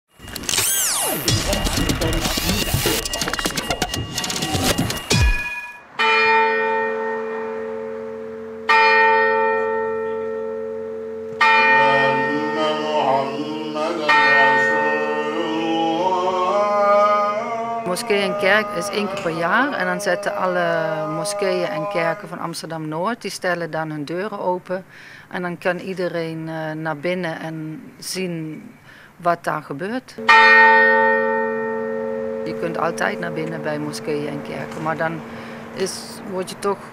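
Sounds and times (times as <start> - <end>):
church bell tolling: 0.3 - 16.4, 17.9 - 22.4, 30.2 - 36.9.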